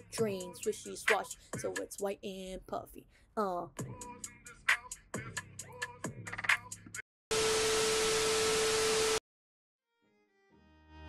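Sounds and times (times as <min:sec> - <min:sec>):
hip-hop track with vocals: 0:00.0 - 0:07.0.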